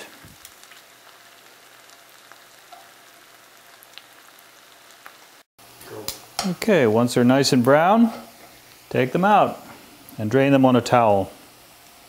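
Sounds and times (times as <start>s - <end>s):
small crackles: 0.0s - 6.3s
food sizzling in oil: 0.0s - 12.0s.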